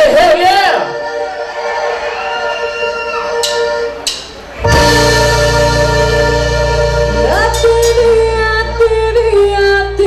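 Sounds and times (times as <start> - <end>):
band holding a chord: 3.3 - 10.0.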